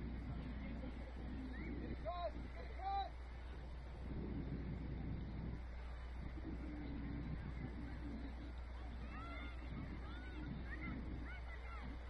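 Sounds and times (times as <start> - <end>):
faint distant voices: 0.0 - 12.0
low wind rumble: 0.0 - 12.0.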